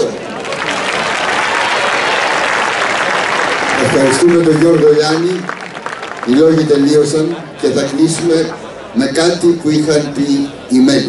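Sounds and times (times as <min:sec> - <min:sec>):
large audience applauding: 0:00.0 - 0:07.4.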